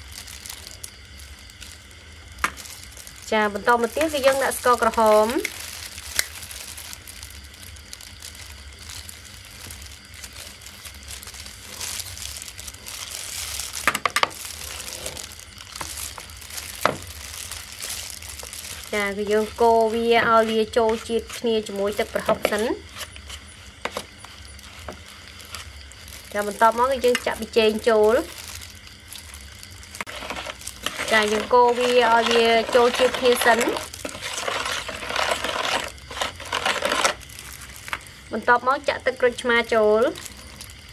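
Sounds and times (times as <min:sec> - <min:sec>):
spoon scraping plastic bowl: 0:30.0 - 0:37.2.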